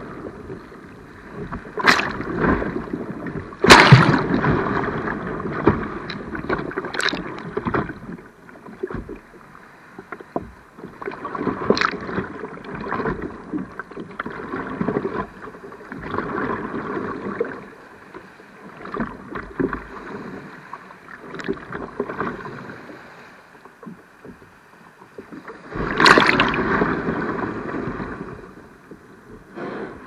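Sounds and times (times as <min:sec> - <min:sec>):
water sloshing and splashing: 0:00.0 - 0:30.0.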